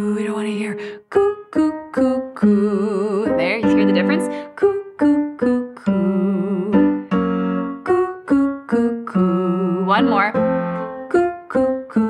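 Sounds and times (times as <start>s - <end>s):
digital piano accompaniment: 1.2s - 12.0s.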